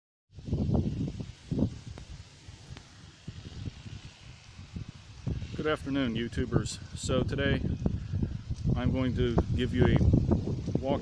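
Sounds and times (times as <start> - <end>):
faint outdoor hiss: 0.3 - 11.0
wind buffeting microphone: 0.3 - 11.0.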